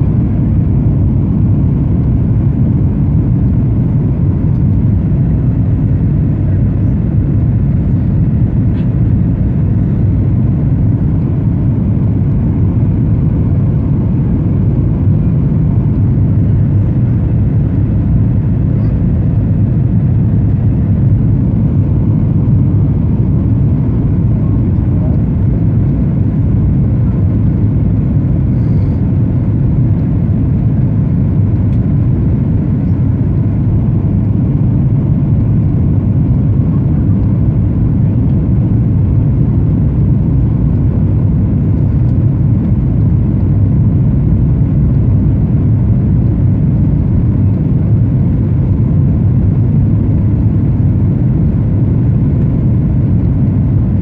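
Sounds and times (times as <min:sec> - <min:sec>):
airplane engines droning: 0:00.0 - 0:54.0.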